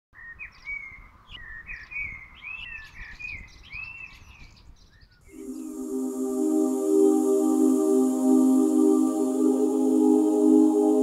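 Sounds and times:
songbird singing: 0.2s - 6.4s
soft sustained music chords: 5.3s - 11.0s.

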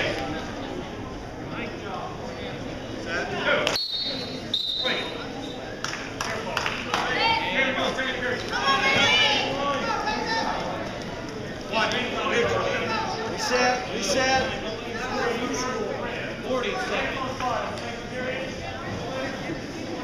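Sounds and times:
coaches and spectators shouting: 7.0s - 19.5s.

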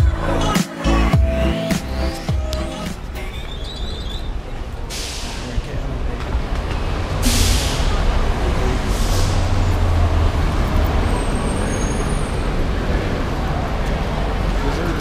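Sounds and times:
short hiss: 4.9s - 5.5s.

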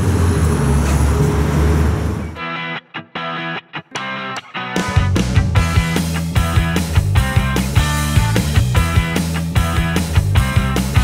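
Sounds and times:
low rumble of road traffic: 0.0s - 2.4s
vehicle engine humming: 0.0s - 2.4s.

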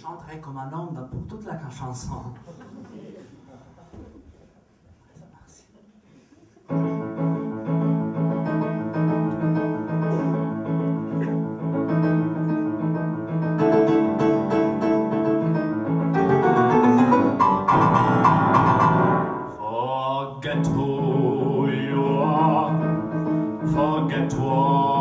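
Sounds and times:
piano playing chords: 6.7s - 19.6s, 20.8s - 25.0s.

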